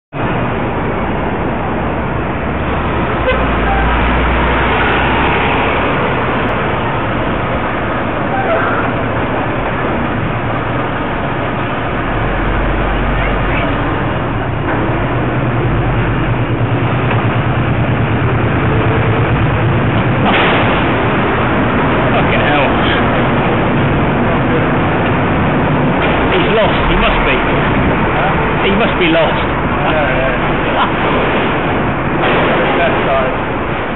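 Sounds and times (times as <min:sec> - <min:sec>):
street traffic: 0:00.1 - 0:33.9
truck engine running: 0:00.2 - 0:33.9
wind noise on microphone: 0:27.3 - 0:28.7.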